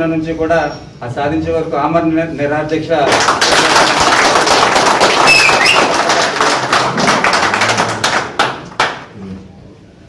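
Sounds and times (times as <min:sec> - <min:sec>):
crowd applauding: 0:03.1 - 0:09.1.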